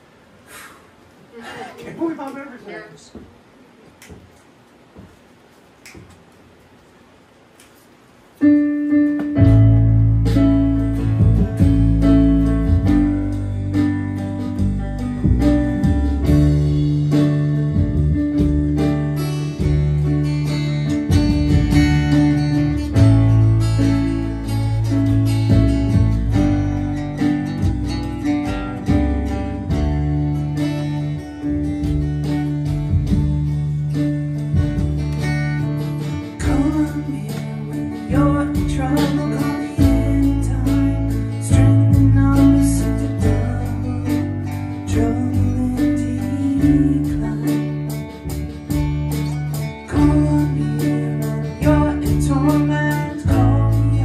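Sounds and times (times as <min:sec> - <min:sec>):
live band playing a song: 0:08.4 - 0:54.0
double bass notes: 0:08.6 - 0:54.0.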